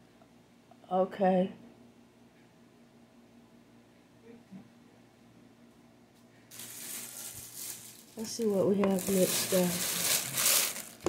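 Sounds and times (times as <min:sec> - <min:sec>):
plastic rustling: 0:06.5 - 0:11.0.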